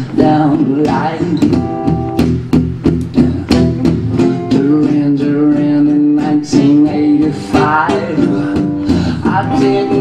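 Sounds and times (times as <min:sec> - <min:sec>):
acoustic guitars strumming: 0:00.0 - 0:10.0.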